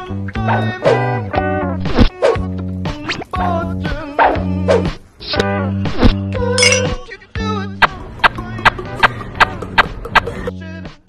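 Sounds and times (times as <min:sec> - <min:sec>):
background music: 0:00.0 - 0:11.0
glass bottle clink: 0:06.6 - 0:07.0.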